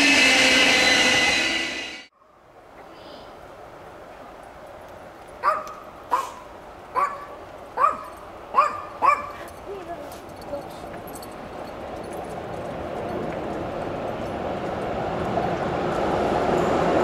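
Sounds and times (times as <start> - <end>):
train rumble: 0.0 - 2.1, 3.9 - 17.0
dog yipping: 5.4 - 6.4, 7.0 - 9.5
dog barking: 5.4 - 9.5.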